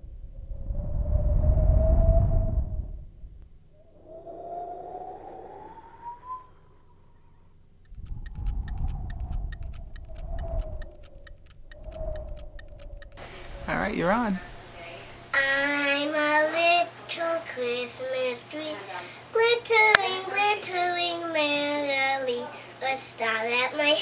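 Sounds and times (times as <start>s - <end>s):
low rumbling: 0.0s - 15.4s
wavering gliding tone: 3.6s - 13.8s
rapid clock-like ticking: 7.8s - 14.3s.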